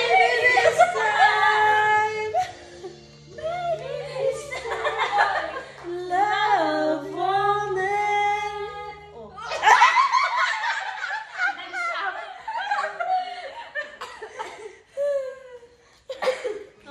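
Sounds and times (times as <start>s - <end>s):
young woman singing: 0.0s - 2.4s, 5.8s - 9.4s
young women laughing: 0.0s - 5.9s, 9.4s - 16.8s.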